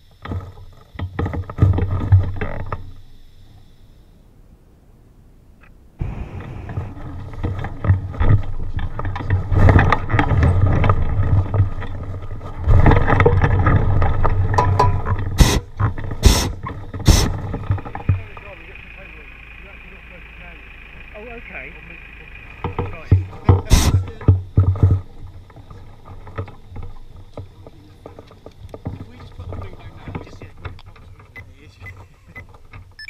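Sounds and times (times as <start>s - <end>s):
short sharp bursts: 15.4s - 24.1s.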